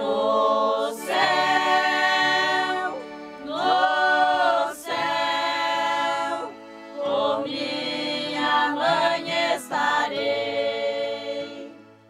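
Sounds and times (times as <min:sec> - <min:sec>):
choir singing long chords: 0:00.0 - 0:12.0.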